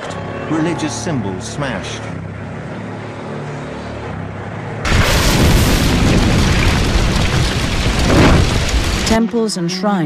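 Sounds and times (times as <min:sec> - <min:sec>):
roaring fire with deep rumble: 0:04.8 - 0:09.2.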